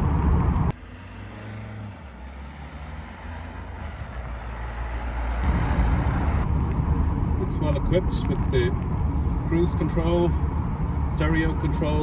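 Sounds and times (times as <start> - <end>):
car engine approaching: 0.0 - 12.0.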